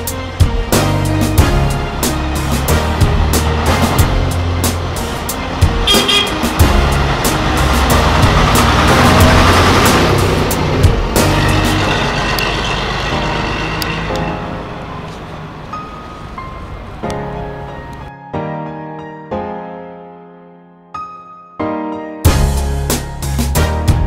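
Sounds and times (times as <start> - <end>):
background music with steady beat: 0.0 - 15.3, 21.6 - 24.0
bus driving past: 0.3 - 18.1.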